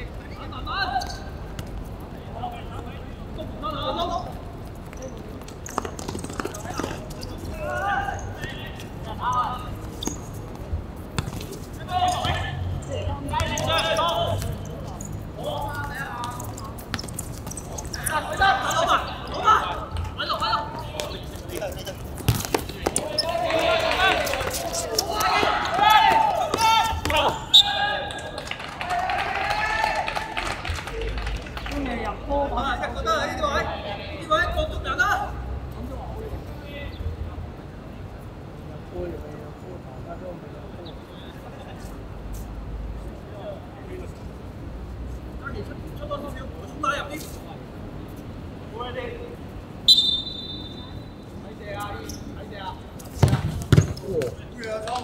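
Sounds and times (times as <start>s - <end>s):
ball being kicked: 11.1s - 11.6s, 22.1s - 23.1s, 53.2s - 54.4s
players shouting: 11.8s - 14.6s, 17.7s - 21.3s, 22.4s - 31.0s.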